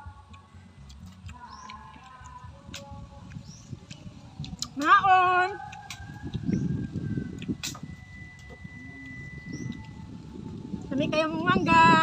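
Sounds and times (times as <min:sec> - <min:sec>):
chewing and crunching mango: 0:00.0 - 0:10.8.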